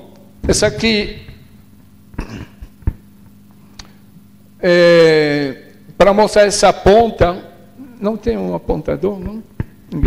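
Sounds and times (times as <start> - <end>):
faint electrical hum: 0.0 - 10.0
microphone handling knocks: 0.4 - 1.6.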